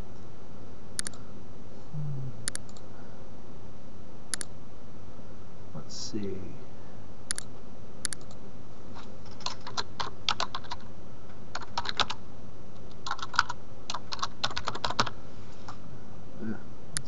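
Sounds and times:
typing on computer keyboard: 9.3s - 10.8s, 11.5s - 12.2s, 12.9s - 15.1s.

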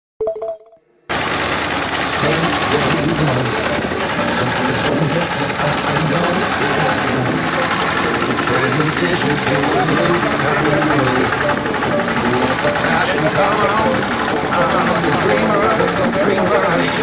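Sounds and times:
brief tone: 0.2s - 1.0s
walking tractor engine knocking: 1.1s - 17.0s
person talking: 2.0s - 17.0s.

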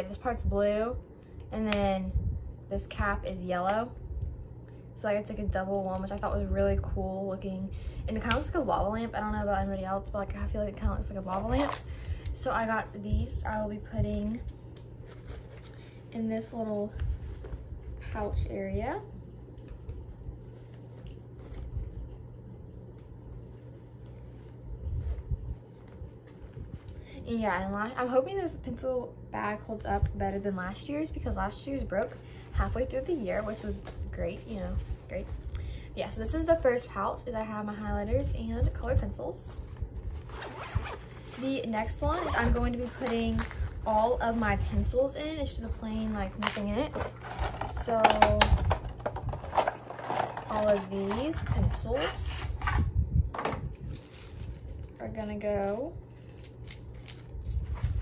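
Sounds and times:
steady low hum: 0.0s - 58.0s
pencils clicking and rustling: 46.1s - 52.8s, 53.4s - 57.6s.

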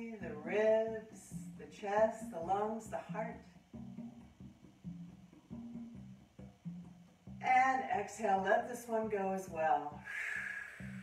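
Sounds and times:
slow plucked-string music: 0.0s - 10.1s.

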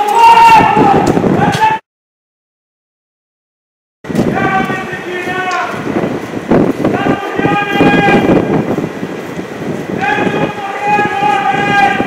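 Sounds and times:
rough street noise: 0.0s - 1.8s, 4.0s - 12.0s
men shouting protest chants: 4.3s - 5.9s, 6.9s - 8.6s, 9.9s - 12.0s.

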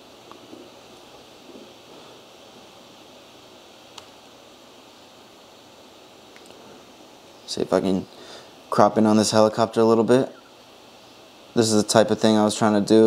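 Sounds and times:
low steady hiss: 0.0s - 13.0s
faint click: 3.9s - 4.2s.

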